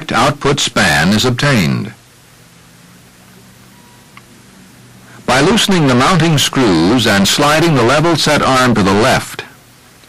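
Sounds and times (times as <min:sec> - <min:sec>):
faint low hum: 0:00.0 - 0:10.0
steady hiss: 0:00.0 - 0:10.0.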